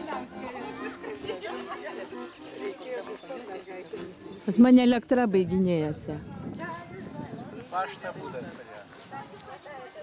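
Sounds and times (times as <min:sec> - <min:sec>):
overlapping group chatter: 0:00.0 - 0:10.0.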